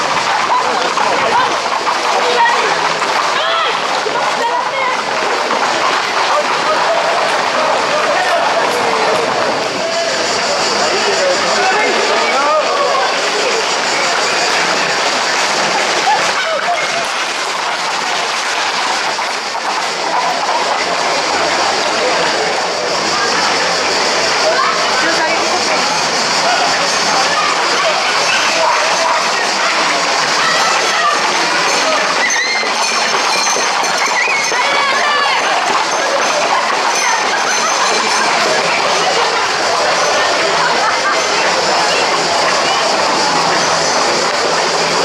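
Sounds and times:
people shouting: 0.0 - 18.3, 23.0 - 45.0
crowd chatter: 0.0 - 45.0.

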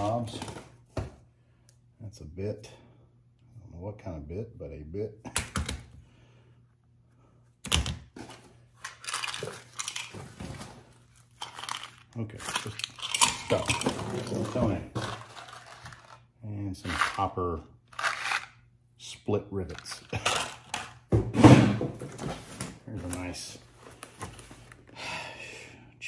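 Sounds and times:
rummaging through objects in a box: 8.2 - 16.2
person speaking: 12.1 - 15.3, 16.4 - 17.7, 22.8 - 23.7.

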